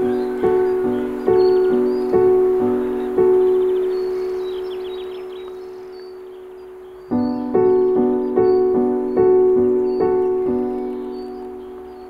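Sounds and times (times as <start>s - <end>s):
slow solo piano: 0.0s - 12.0s.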